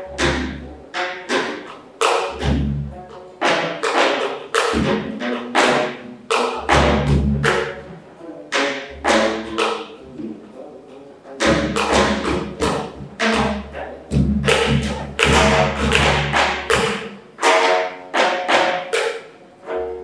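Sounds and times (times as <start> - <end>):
zither strings struck with stick: 0.0 - 10.4, 11.4 - 20.0.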